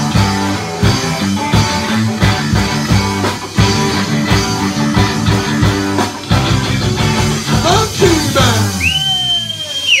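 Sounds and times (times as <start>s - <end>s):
live band playing: 0.0s - 10.0s
long high whistle: 8.7s - 10.0s.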